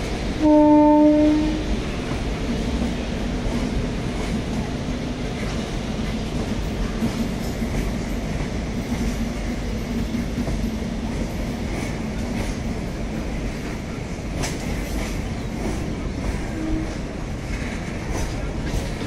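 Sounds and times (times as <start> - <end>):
freight train wheels rumbling: 0.0 - 19.0
train clanking: 0.0 - 19.0.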